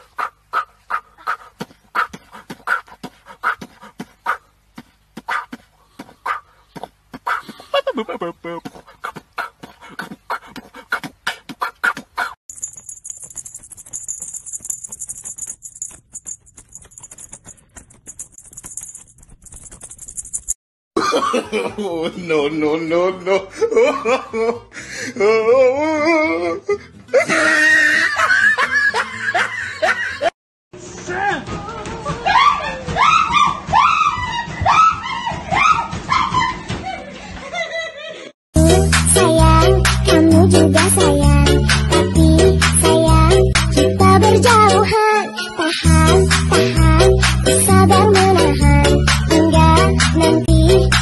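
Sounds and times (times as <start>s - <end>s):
goat huffing and puffing: 0.6s - 12.3s
person laughing: 7.4s - 8.8s, 23.2s - 30.3s.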